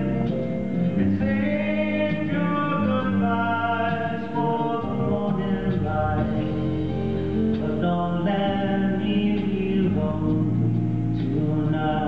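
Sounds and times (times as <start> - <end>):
slow ballad with acoustic guitar: 0.0 - 12.0.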